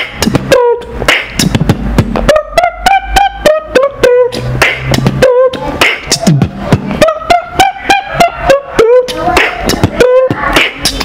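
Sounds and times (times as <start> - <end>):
beatboxing mouth hits: 0.0 - 11.0
held vocal tone bending in pitch: 0.0 - 11.0.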